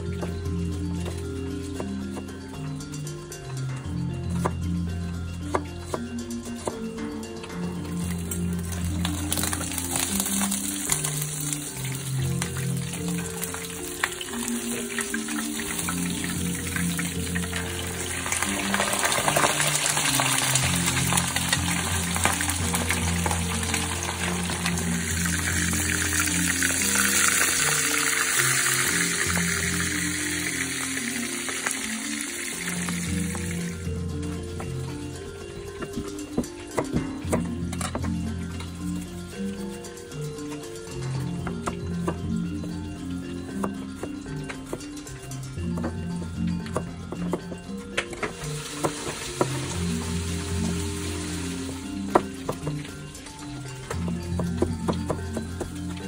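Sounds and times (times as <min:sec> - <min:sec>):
background music: 0:00.0 - 0:56.0
fish frying in hot oil: 0:08.0 - 0:33.9, 0:48.4 - 0:53.1.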